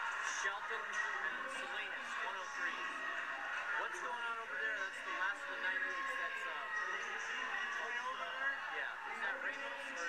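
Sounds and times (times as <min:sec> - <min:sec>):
chatter of overlapping voices: 0:00.0 - 0:10.0.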